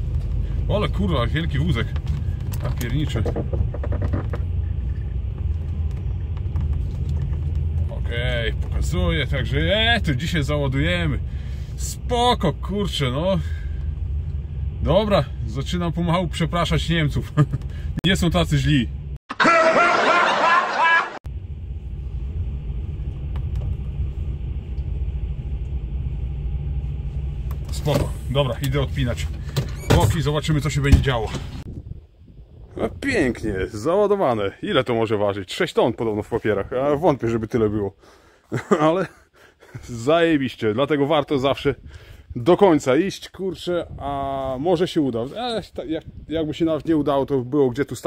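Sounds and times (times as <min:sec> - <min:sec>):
truck engine idling: 0:00.0 - 0:18.0
truck engine rumbling: 0:00.0 - 0:19.2, 0:20.0 - 0:48.0
man laughing loudly: 0:17.2 - 0:17.7, 0:19.3 - 0:21.2, 0:38.5 - 0:39.9.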